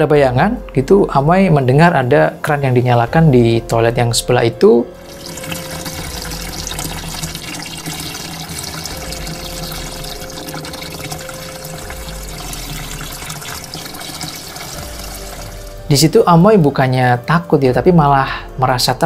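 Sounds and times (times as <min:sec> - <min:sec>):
water running from a tap: 0:04.9 - 0:16.6.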